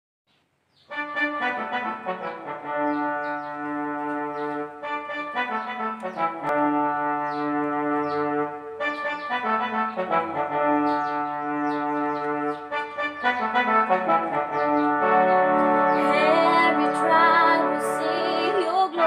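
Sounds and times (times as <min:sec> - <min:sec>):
electronic keyboard brass chords: 0:00.8 - 0:19.0.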